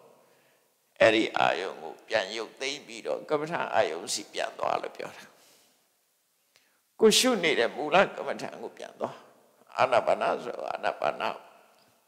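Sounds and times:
man speaking: 1.0s - 5.4s, 7.0s - 11.6s.

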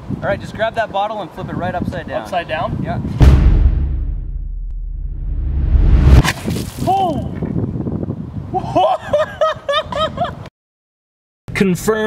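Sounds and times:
deep bass rumble: 3.2s - 6.3s
whoosh sound effect: 3.2s - 6.5s.

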